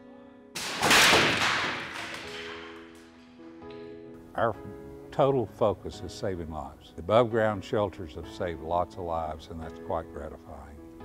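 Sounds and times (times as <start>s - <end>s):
wood board smashing into brick: 0.6s - 3.0s.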